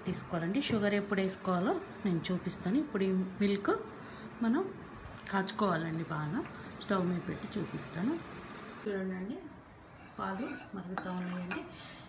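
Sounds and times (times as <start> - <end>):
wooden spatula scraping a pan: 9.9 - 11.7.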